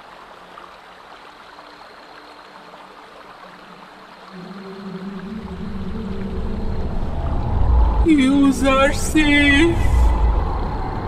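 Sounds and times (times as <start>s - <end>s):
voice holding long note: 4.3s - 11.0s
low steady rumble: 5.4s - 11.0s.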